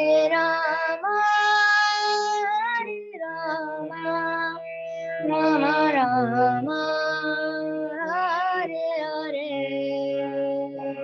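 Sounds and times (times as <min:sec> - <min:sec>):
electronic keyboard chords: 0:00.0 - 0:11.0
girl singing: 0:00.0 - 0:11.0.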